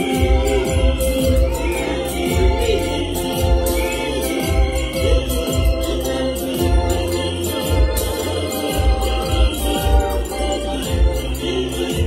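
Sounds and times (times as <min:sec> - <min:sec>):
congregation singing a hymn: 0:00.0 - 0:12.0
steady low beat: 0:00.0 - 0:12.0.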